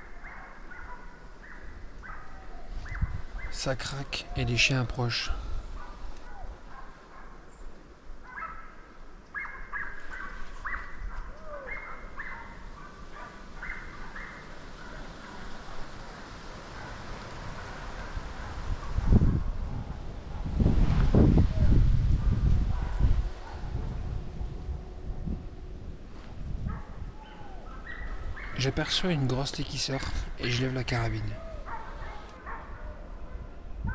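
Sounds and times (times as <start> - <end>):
distant dogs baying: 0.1 - 7.5, 9.4 - 20.7, 22.2 - 25.8, 26.4 - 32.8
loud low rumbling on microphone: 19.2 - 27.2.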